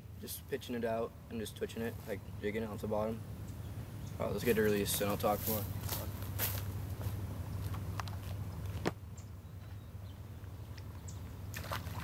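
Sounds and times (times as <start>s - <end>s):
footsteps crunching on dry grass: 4.3s - 8.9s.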